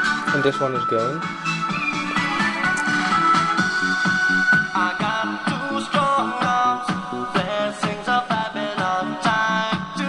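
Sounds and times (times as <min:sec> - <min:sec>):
thin music with fast beat: 0:00.0 - 0:10.0.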